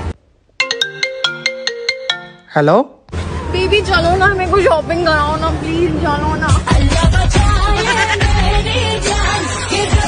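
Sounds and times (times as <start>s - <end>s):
mobile phone ringtone melody: 0.6s - 2.6s.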